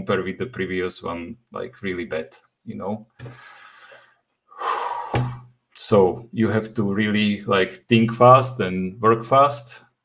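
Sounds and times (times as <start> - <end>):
man exhaling: 3.2 - 5.5
sharp in-breath: 3.2 - 5.5.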